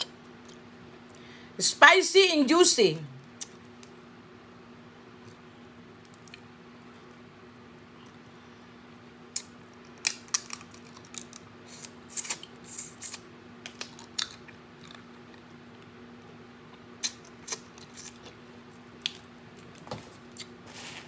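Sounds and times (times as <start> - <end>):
faint steady hum: 0.0 - 21.0
wet sucking and lip smacks: 17.0 - 18.3.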